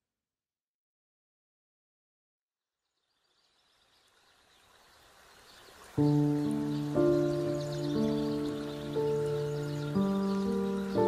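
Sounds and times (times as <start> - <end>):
birds chirping: 3.0 - 11.0.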